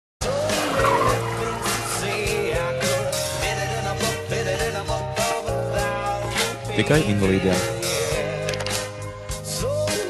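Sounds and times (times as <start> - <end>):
car tires squealing: 0.2 - 4.0.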